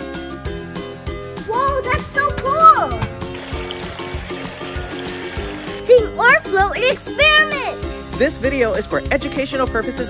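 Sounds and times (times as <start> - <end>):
background music: 0.0 - 10.0
toy car wheels splashing water: 3.2 - 7.1.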